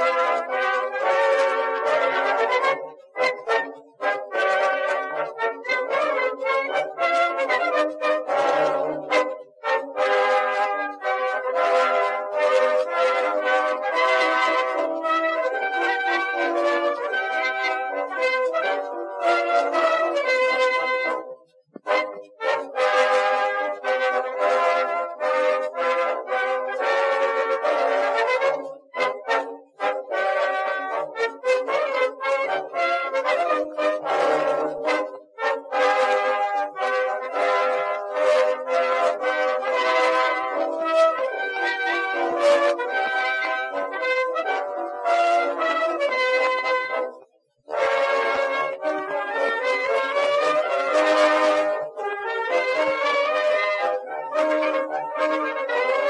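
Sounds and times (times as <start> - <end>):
brass band music: 0.0 - 56.0.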